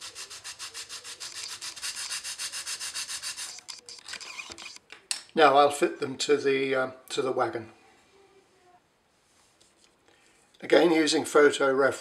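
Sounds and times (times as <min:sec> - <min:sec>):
plastic scraping on sandpaper: 0:00.0 - 0:04.8.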